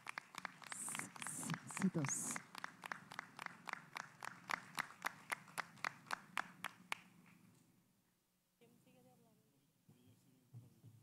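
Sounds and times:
small group clapping: 0:00.0 - 0:07.4.

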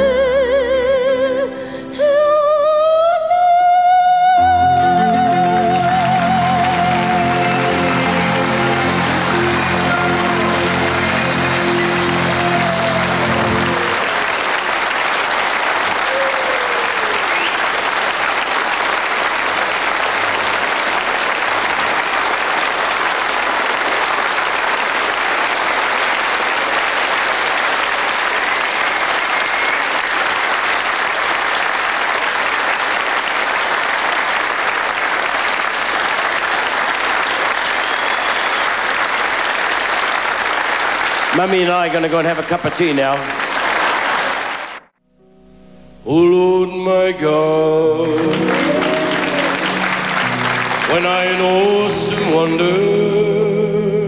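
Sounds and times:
audience applauding: 0:05.0 - 0:45.0, 0:46.8 - 0:53.4.

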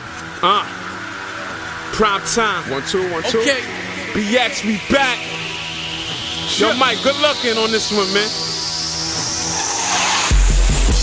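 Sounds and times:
noisy rising sweep: 0:00.0 - 0:11.0
man speaking: 0:00.4 - 0:00.7, 0:01.3 - 0:08.6.

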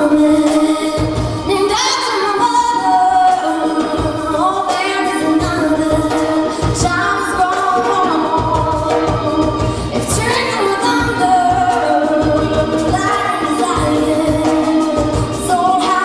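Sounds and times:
live band playing slow song: 0:00.0 - 0:16.0
woman singing: 0:00.0 - 0:16.0.

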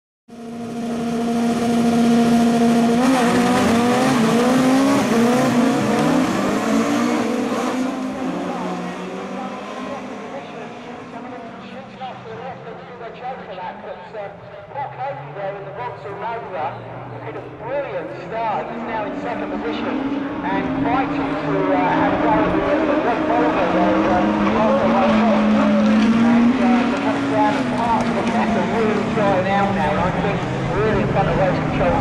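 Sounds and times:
race car engines revving: 0:00.3 - 0:32.0
race cars accelerating away: 0:00.3 - 0:32.0.

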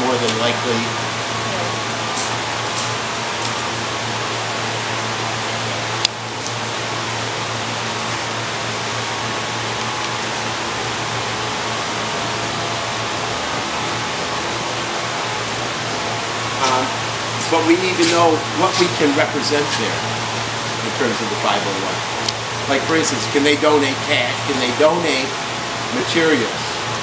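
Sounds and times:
ventilation fans rushing: 0:00.0 - 0:27.0.

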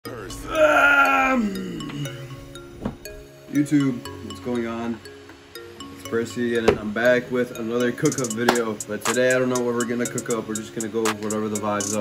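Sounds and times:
background music with held tones: 0:00.0 - 0:12.0
man groaning: 0:00.1 - 0:02.3.

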